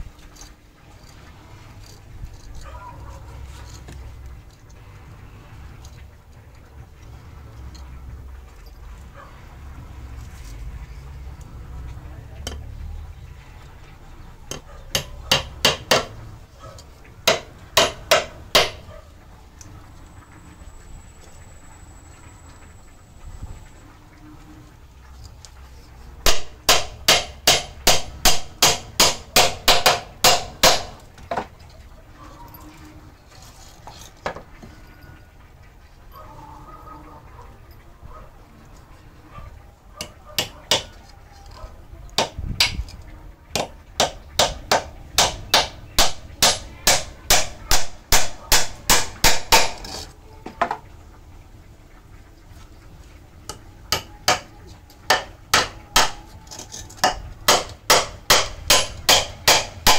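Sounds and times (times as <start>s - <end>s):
hammer striking nails into wood: 14.5s - 16.2s, 17.3s - 18.8s, 26.3s - 31.4s, 40.4s - 41.0s, 43.6s - 49.8s, 55.1s - 56.2s, 57.0s - 59.9s.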